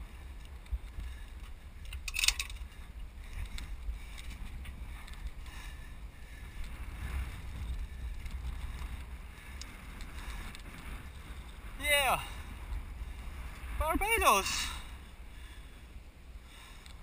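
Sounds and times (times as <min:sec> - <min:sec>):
wind buffeting microphone: 0:00.0 - 0:17.0
person calling out: 0:11.8 - 0:12.3, 0:13.8 - 0:14.8
person speaking: 0:11.8 - 0:12.3, 0:13.8 - 0:14.8.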